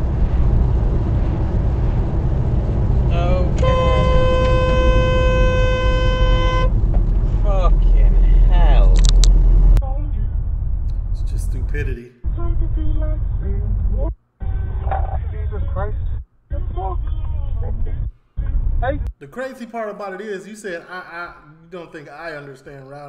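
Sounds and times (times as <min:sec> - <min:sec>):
car road and engine rumble: 0:00.0 - 0:19.2
long car horn blast: 0:03.1 - 0:06.8.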